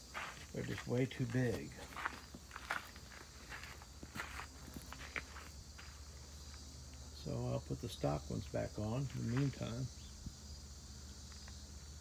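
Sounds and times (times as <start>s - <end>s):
footsteps on gravel: 0.0s - 6.6s, 9.0s - 9.8s.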